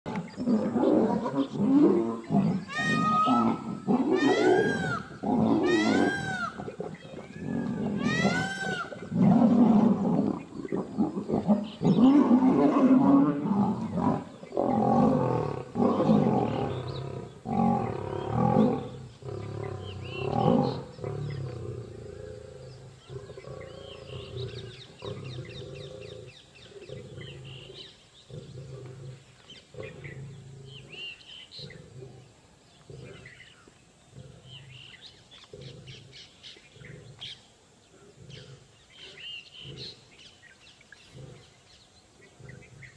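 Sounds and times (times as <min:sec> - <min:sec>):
lions snarling and roaring: 0:00.1 - 0:37.3, 0:40.9 - 0:42.9.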